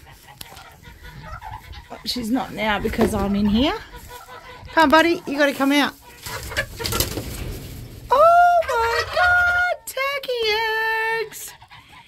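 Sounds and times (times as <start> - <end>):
rustling straw: 0.0 - 9.1.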